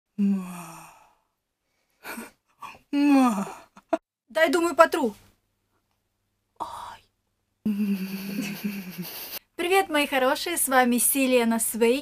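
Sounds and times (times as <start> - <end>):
woman sighing: 0.2 - 1.2.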